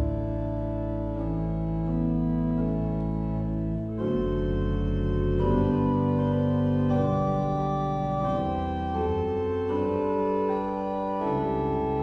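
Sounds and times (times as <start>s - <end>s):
pipe organ chords: 0.0s - 12.0s.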